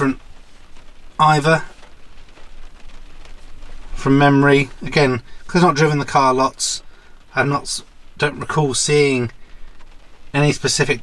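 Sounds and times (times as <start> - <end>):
car cabin hiss and rumble: 0.0 - 11.0.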